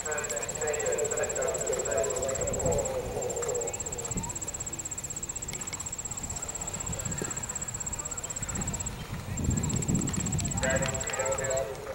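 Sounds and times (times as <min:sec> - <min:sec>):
person speaking: 0:00.0 - 0:05.3.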